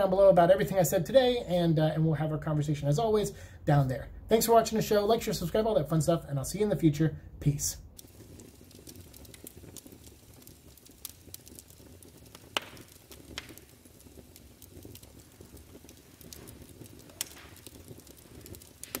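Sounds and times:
fire crackling: 0:00.0 - 0:19.0
sharp pops of fire: 0:07.8 - 0:19.0.

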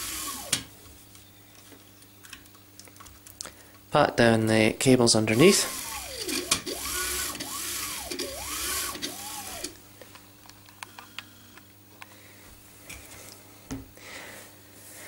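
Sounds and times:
stepper motors whirring: 0:00.0 - 0:00.7, 0:05.2 - 0:09.8.

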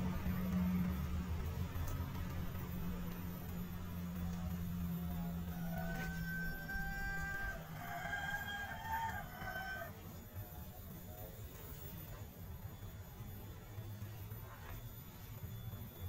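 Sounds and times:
low steady hum: 0:00.0 - 0:16.0
rooster crowing: 0:04.3 - 0:10.2.

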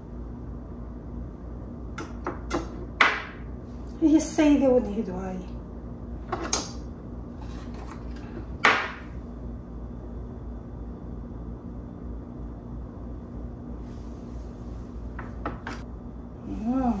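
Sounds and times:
low room hum: 0:00.0 - 0:17.0.

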